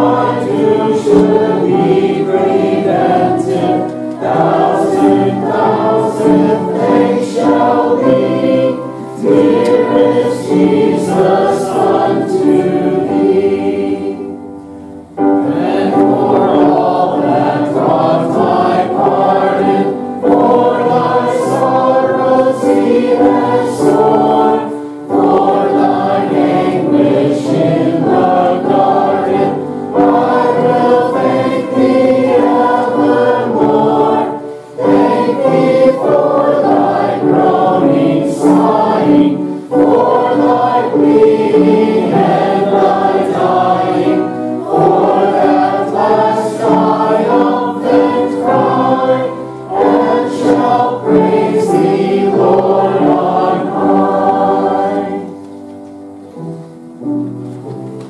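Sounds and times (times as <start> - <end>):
congregation singing a hymn: 0.0 - 58.0.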